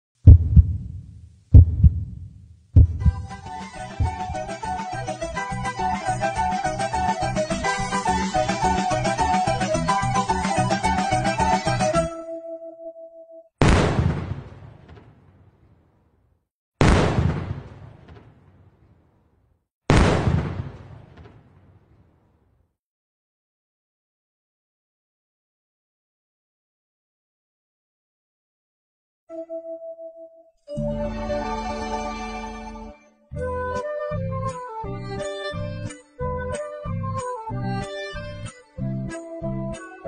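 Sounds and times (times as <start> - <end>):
heartbeat thumps: 0.2 - 4.6
music: 2.8 - 13.5, 29.3 - 40.0
artillery shell explosions: 13.6 - 16.0, 16.8 - 19.2, 19.9 - 22.4.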